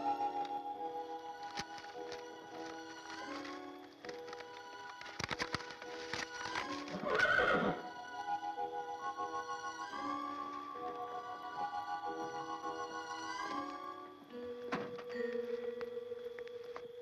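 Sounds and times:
soft background music: 0:00.0 - 0:17.0
horse whinnying: 0:06.9 - 0:07.9.

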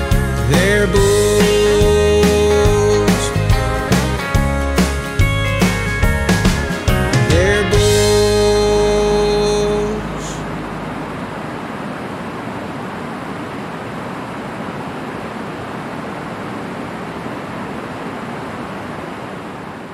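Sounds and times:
held music chord: 0:00.0 - 0:11.5.

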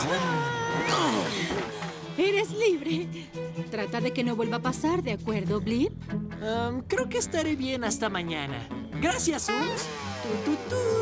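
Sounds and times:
cartoon voices grunting: 0:00.0 - 0:01.4, 0:09.5 - 0:10.0.

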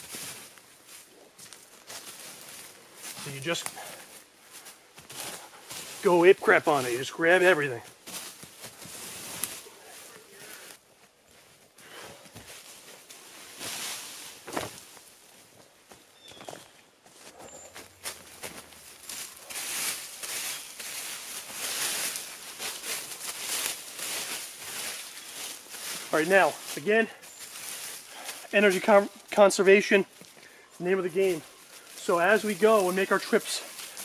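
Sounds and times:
dry leaves rustling and crackling: 0:00.0 - 0:10.7, 0:12.4 - 0:15.4, 0:17.8 - 0:34.0.

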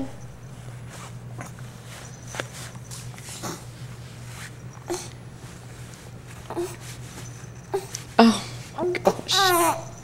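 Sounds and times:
steady low hum: 0:00.0 - 0:10.0
soft clicks and rustles: 0:00.4 - 0:08.8.

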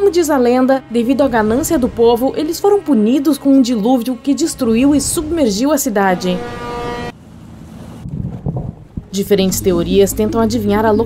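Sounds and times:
low rumble of wind: 0:00.0 - 0:03.2, 0:04.4 - 0:11.0.

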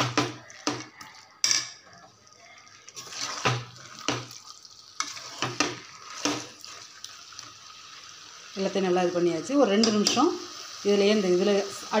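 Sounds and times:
faint sizzle: 0:00.0 - 0:12.0
metal spoon scraping pot: 0:02.9 - 0:04.2, 0:05.0 - 0:06.5.

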